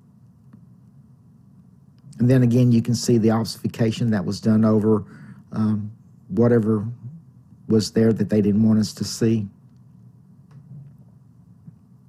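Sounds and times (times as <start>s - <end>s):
low room tone hum: 0.0s - 12.0s.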